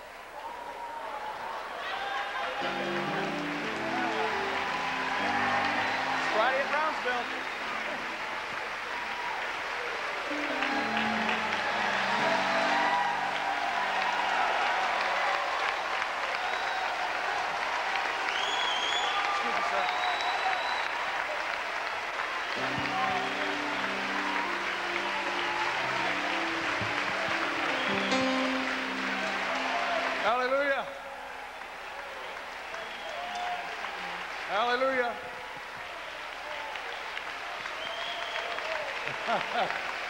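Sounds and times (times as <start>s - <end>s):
crowd applauding: 0.0s - 40.0s
held keyboard chords: 2.6s - 8.4s, 10.3s - 14.3s, 22.5s - 30.4s
whoops and shouts: 9.2s - 17.2s.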